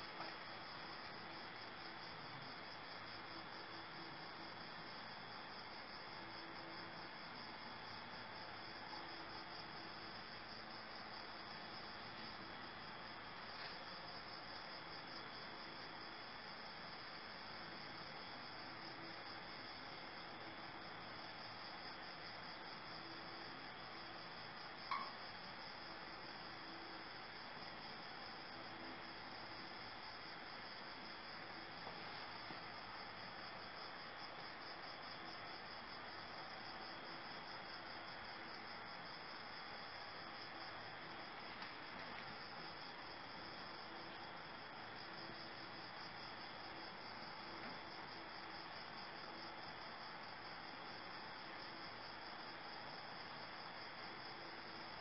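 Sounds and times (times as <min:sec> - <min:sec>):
crickets chirping: 0:00.0 - 0:55.0
low hiss: 0:00.0 - 0:55.0.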